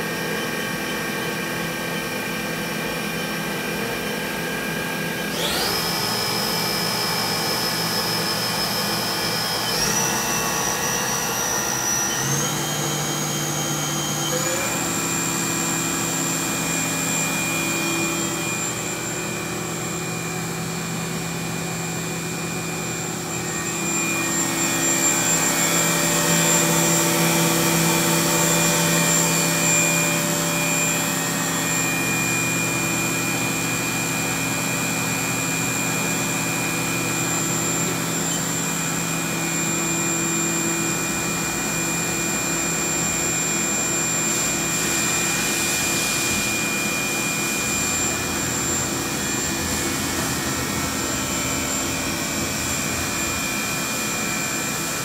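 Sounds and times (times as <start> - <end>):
machine spindle whine: 0.0 - 55.0.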